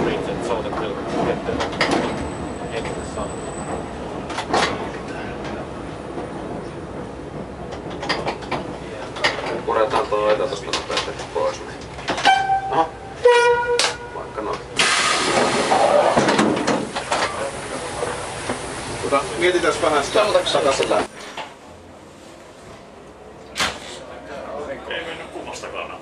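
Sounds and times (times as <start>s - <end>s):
rolling railcar clicking: 0.0s - 26.0s
railcar horn two notes: 12.2s - 14.3s
loud hiss: 14.8s - 19.4s.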